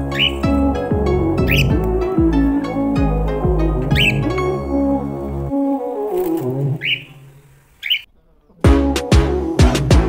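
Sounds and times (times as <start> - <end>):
soft background music: 0.0 - 7.0
cockatiel chirps: 7.8 - 8.1.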